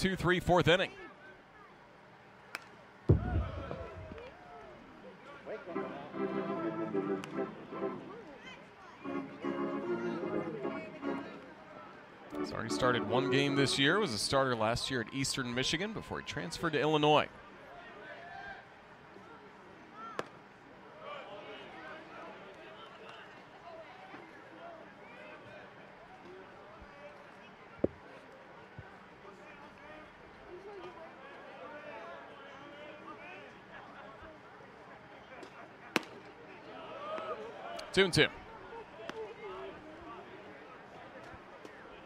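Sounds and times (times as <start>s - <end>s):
spectator chatter: 0.0s - 42.0s.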